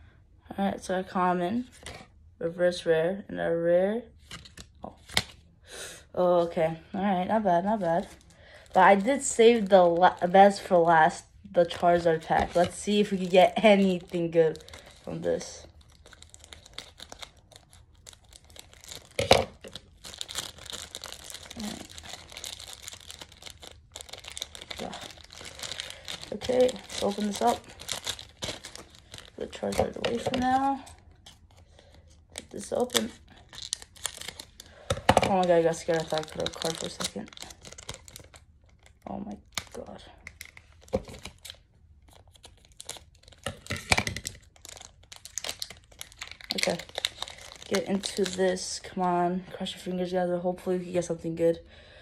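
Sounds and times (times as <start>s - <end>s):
plastic and foil crinkling: 7.4s - 49.0s.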